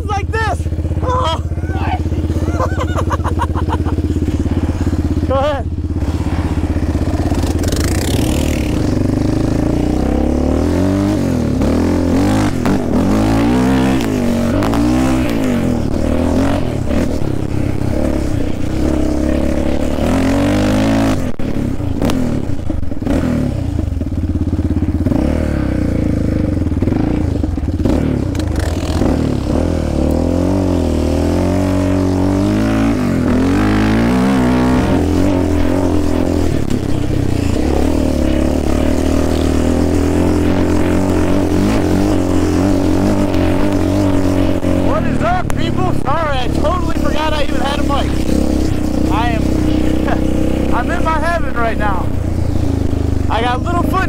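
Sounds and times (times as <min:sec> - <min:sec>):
engine revving: 0:00.0 - 0:54.0.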